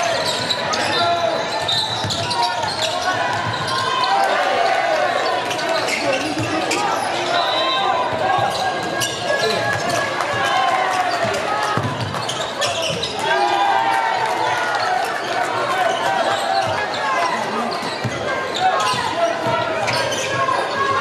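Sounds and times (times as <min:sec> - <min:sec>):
people calling and shouting: 0:00.0 - 0:21.0
ball bouncing on wooden court: 0:11.8 - 0:12.2.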